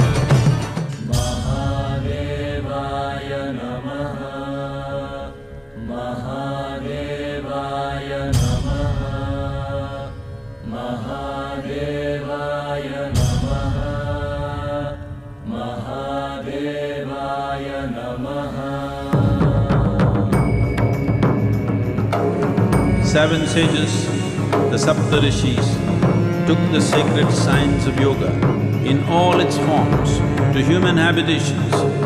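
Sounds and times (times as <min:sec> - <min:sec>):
chanted mantra with music: 0:00.9 - 0:32.0.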